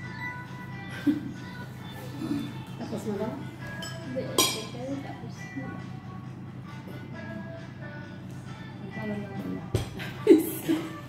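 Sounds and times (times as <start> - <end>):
cutlery clinking on crockery: 3.8 - 4.7.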